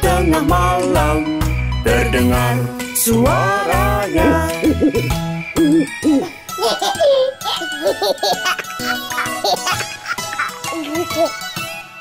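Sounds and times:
light children's song music: 0:00.0 - 0:12.0.

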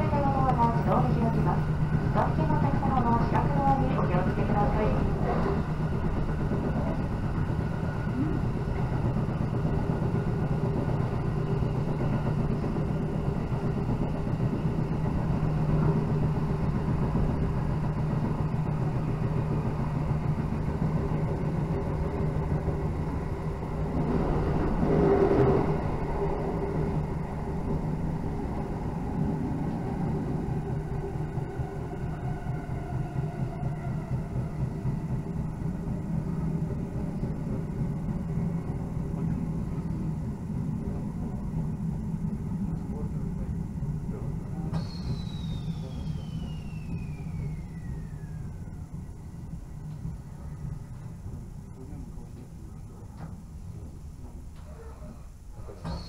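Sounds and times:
low even drone: 0:00.0 - 0:55.8
train wheels rumbling on rail: 0:00.0 - 0:56.0.

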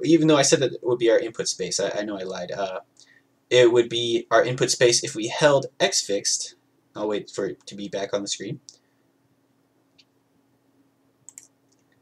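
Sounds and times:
computer mouse clicks: 0:11.3 - 0:12.0.

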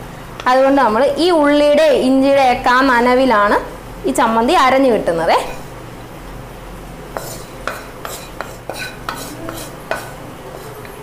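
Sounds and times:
wooden spatula scraping a pan: 0:07.1 - 0:11.0.

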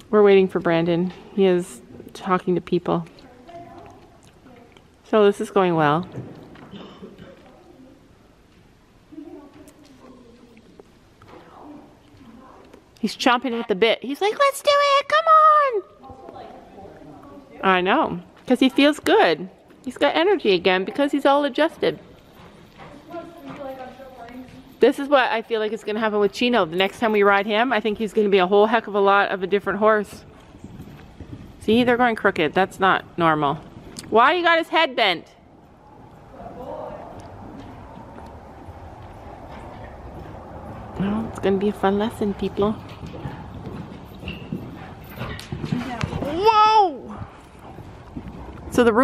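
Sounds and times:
horse trotting on sand: 0:16.0 - 0:49.0.

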